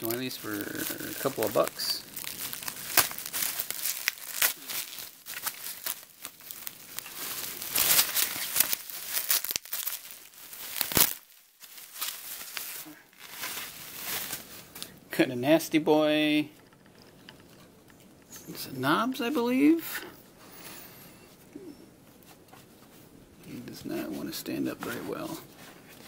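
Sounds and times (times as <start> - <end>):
bubble wrap crinkling: 0.0 - 15.0.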